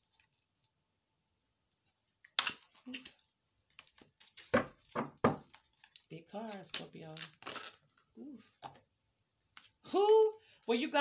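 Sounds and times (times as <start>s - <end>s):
cards rustling: 1.8s - 8.8s.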